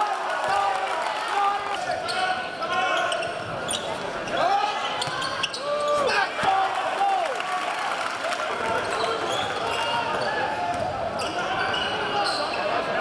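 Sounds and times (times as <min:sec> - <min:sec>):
crowd voices in a gym: 0:00.0 - 0:13.0
sneakers squeaking on hardwood: 0:03.0 - 0:06.0.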